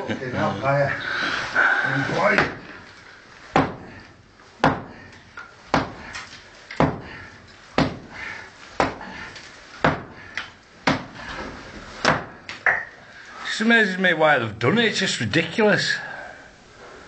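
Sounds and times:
tool striking brick wall: 3.5s - 4.0s, 4.6s - 8.2s, 9.8s - 11.3s.

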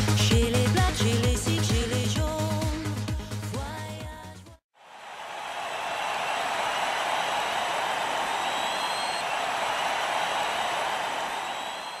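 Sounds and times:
faint high whistling tones: 8.4s - 9.3s, 11.3s - 12.0s.

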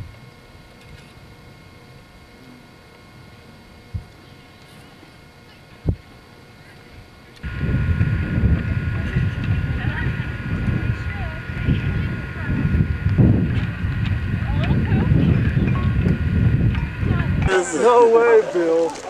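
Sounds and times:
voices of group walking: 4.0s - 19.0s
wind rumbling on microphone: 5.8s - 6.1s, 7.4s - 17.8s.

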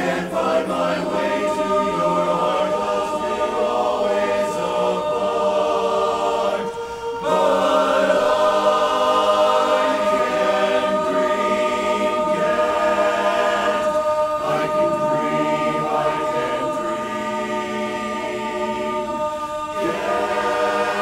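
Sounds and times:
men's barbershop chorus singing: 0.0s - 21.0s.

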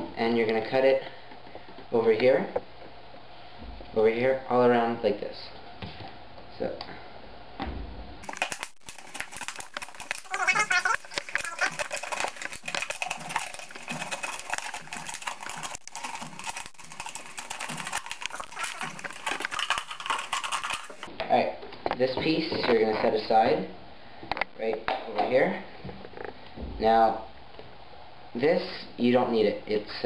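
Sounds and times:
plastic bottle crackling: 8.2s - 21.1s.

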